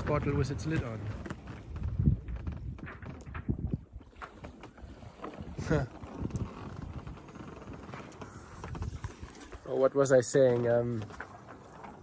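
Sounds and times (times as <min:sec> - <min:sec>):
boat knocking and creaking: 0:00.0 - 0:12.0
sail shaking: 0:00.0 - 0:12.0.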